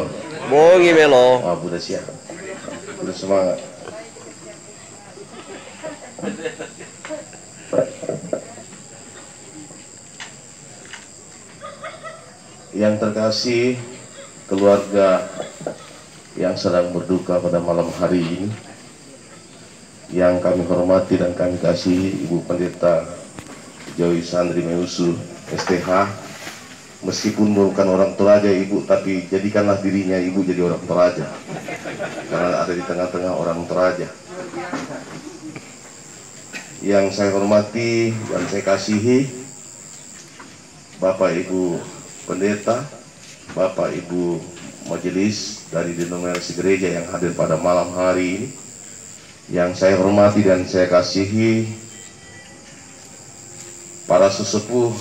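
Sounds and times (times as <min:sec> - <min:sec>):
crickets chirring: 0:00.0 - 0:55.0
man speaking over microphone: 0:00.4 - 0:02.0.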